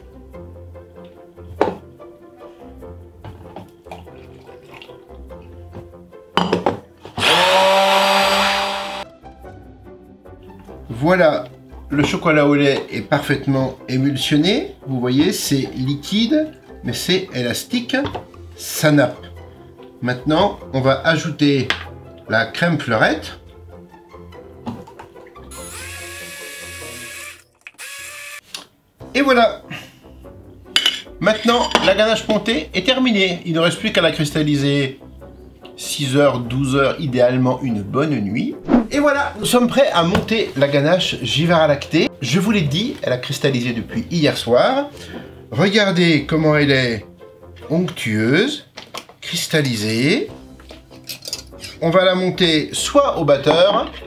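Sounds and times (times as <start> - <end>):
quiet background music: 0.0 - 54.0
immersion blender motor whining: 7.2 - 9.1, 25.5 - 28.5.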